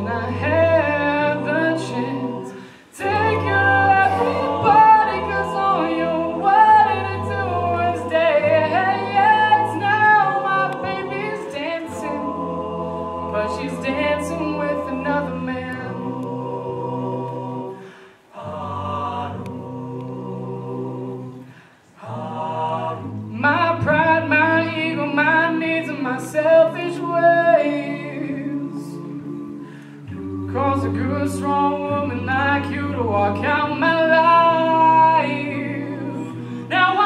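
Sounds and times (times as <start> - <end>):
backing harmonies: 0.0 - 37.0
beatboxed percussion clicks: 19.3 - 20.2.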